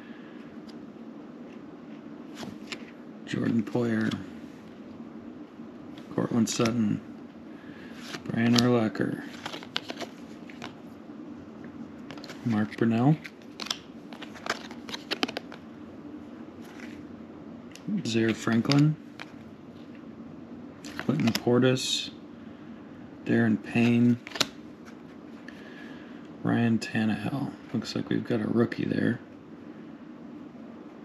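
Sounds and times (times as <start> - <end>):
cards rustling: 1.5 - 4.4, 5.9 - 6.9, 7.8 - 11.0, 12.0 - 15.7, 16.6 - 17.0, 17.7 - 19.9, 20.8 - 21.6, 23.6 - 25.7
trading cards snapping: 9.3 - 10.8, 12.1 - 15.6, 23.8 - 24.6.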